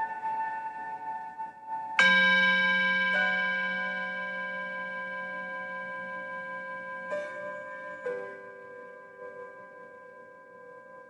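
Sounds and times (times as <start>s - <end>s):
bell-like meditation tones: 0.0s - 11.0s.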